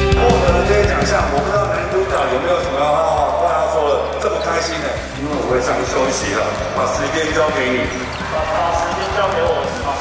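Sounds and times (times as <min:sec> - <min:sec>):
rock music: 0:00.0 - 0:03.4, 0:05.0 - 0:10.0
voices echoing in an arena: 0:00.0 - 0:10.0.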